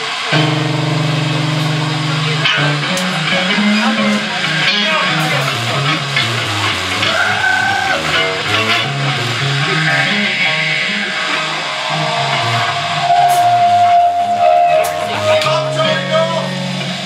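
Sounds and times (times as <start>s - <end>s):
electric bass line: 0.0s - 17.0s
electric guitar: 0.0s - 17.0s.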